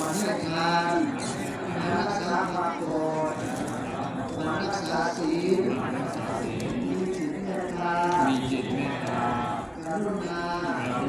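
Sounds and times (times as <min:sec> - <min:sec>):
person chanting slowly: 0:00.0 - 0:11.0.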